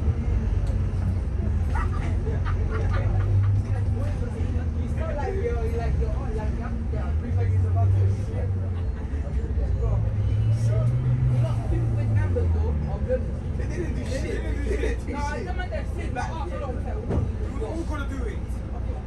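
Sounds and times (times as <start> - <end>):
bus engine rumble: 0.0 - 19.0
passengers talking: 0.0 - 19.0.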